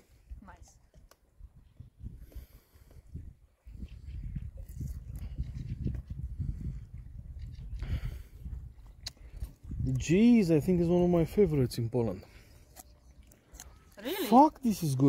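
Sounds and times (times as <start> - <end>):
wind buffeting microphone: 1.3 - 11.7.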